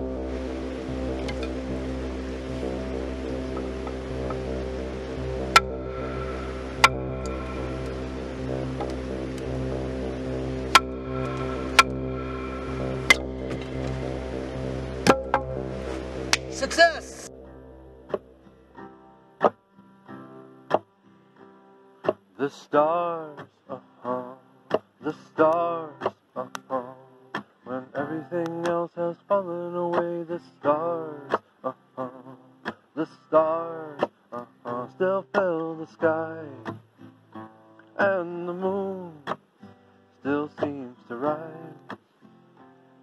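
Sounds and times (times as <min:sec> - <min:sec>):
quiet music with light ticks: 0:00.0 - 0:16.5, 0:18.0 - 0:42.8
background music: 0:00.0 - 0:22.0.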